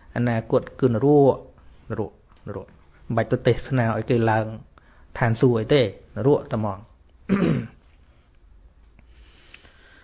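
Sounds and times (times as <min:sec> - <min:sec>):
man speaking: 0:00.0 - 0:07.0
man clearing throat: 0:07.3 - 0:07.8.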